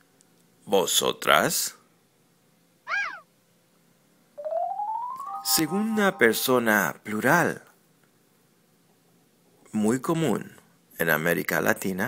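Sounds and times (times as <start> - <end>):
short rising and falling tone: 4.4 - 6.8.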